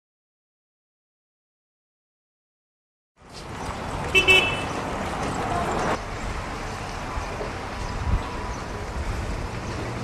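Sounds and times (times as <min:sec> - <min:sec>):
traffic: 0:03.2 - 0:10.0
vehicle horn toots: 0:04.1 - 0:04.8.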